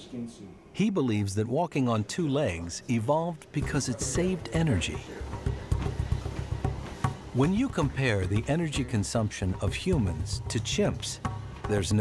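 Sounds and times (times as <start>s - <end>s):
barefoot footsteps on treadmill: 3.6s - 12.0s
treadmill motor rumbling: 3.6s - 12.0s.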